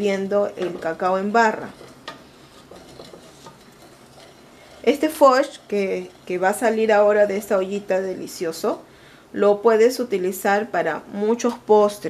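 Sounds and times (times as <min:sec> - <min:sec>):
spoon scraping a metal pot: 0:00.4 - 0:08.3.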